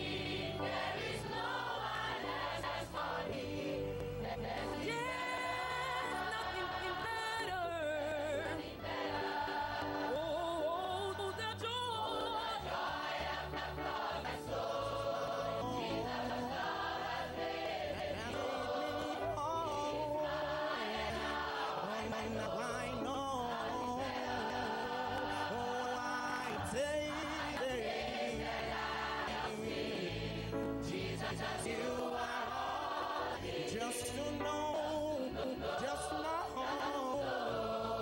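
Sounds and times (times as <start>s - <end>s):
choir singing gospel song: 0.0s - 38.0s.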